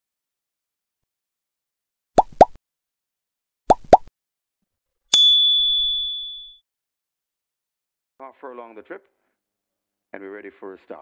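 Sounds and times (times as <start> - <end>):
bright bell ding: 5.1 - 6.6.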